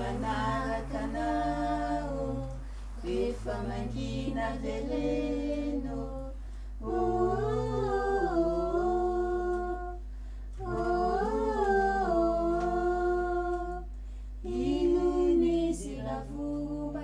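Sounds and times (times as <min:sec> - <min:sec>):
steady low hum: 0:00.0 - 0:17.0
person humming: 0:06.8 - 0:10.0, 0:10.6 - 0:13.8.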